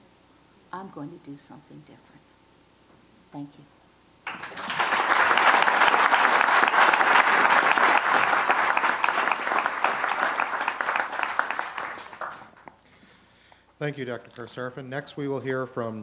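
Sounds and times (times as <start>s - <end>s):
audience applauding: 4.2s - 12.8s.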